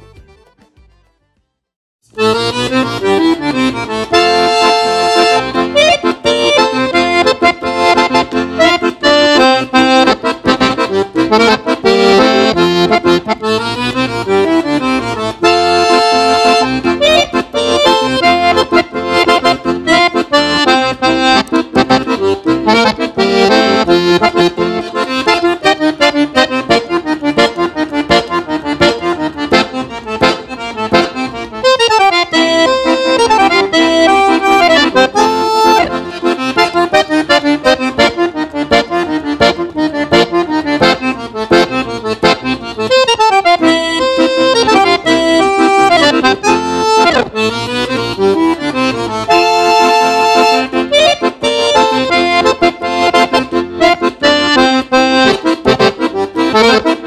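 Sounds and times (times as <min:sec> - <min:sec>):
accordion bass accompaniment: 0:00.0 - 0:57.0
accordion melody: 0:00.0 - 0:57.0.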